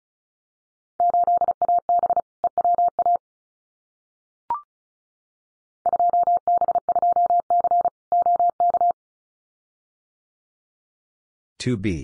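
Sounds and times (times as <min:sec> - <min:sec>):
morse code beeps: 0:01.0 - 0:03.2, 0:05.9 - 0:09.0.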